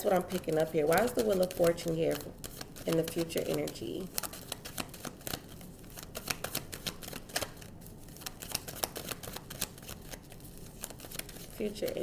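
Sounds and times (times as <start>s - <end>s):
cards being shuffled: 0.0s - 12.0s.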